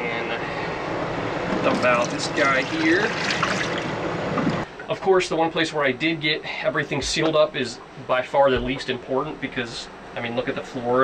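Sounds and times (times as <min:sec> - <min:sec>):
water splashing into steel sink: 0:01.5 - 0:04.6.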